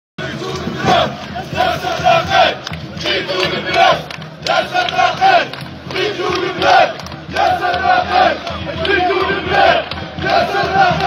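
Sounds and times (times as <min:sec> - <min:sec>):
crowd chanting and shouting: 0:00.2 - 0:11.0.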